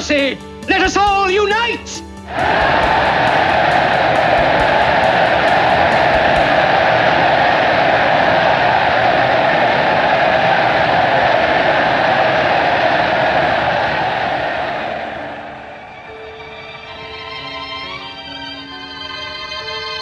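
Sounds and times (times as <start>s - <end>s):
crowd cheering and applauding: 2.3s - 19.9s.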